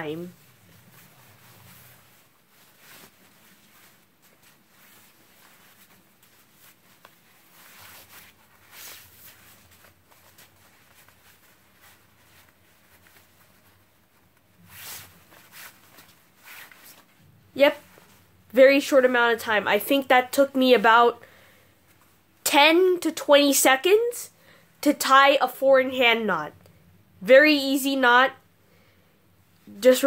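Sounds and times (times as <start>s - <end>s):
fabric rustling and swishing: 0.0s - 20.2s.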